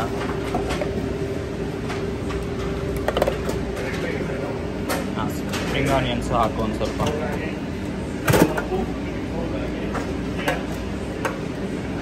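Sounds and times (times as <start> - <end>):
restaurant background noise: 0.0 - 12.0
steady hum: 0.0 - 12.0.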